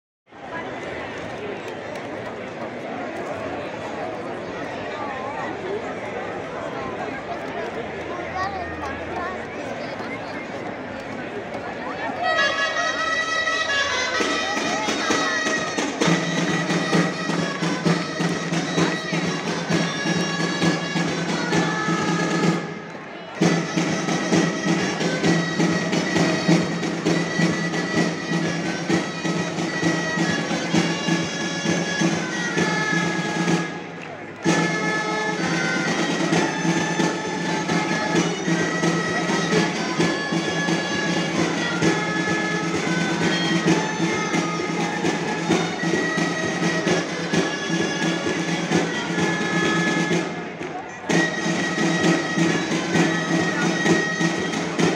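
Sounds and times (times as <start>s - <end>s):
shawms playing a reedy tune: 11.0s - 54.9s
drum beat: 14.2s - 22.6s, 23.4s - 33.6s.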